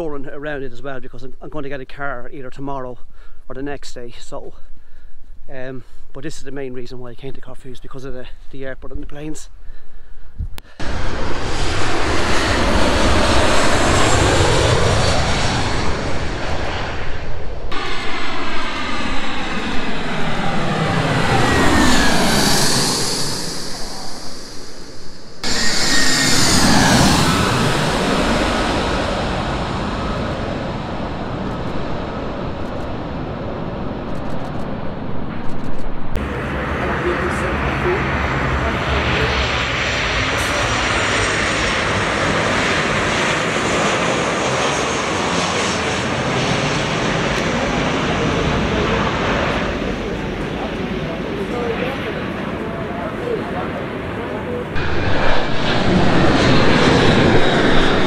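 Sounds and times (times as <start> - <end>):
jet engines passing by: 0.0 - 58.0
steady jet engine noise: 10.6 - 58.0.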